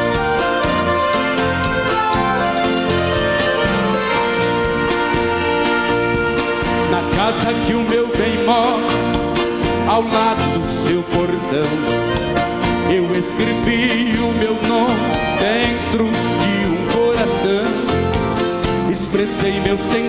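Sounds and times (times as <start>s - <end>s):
accordion: 0.0s - 20.0s
acoustic guitar: 0.0s - 20.0s
drums: 0.0s - 20.0s.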